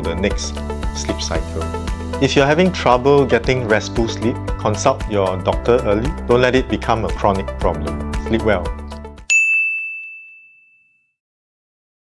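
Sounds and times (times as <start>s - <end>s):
bright chime ding: 9.3s - 11.1s.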